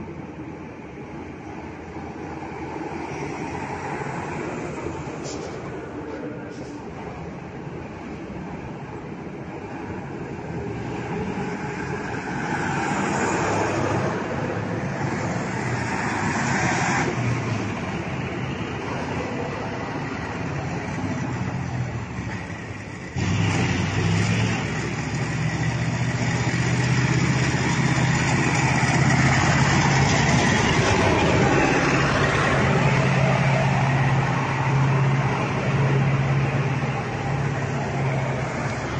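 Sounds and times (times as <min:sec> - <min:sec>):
truck engine hum: 0:00.0 - 0:38.9
trucks driving past: 0:00.0 - 0:38.9
tyres on road: 0:00.0 - 0:38.9.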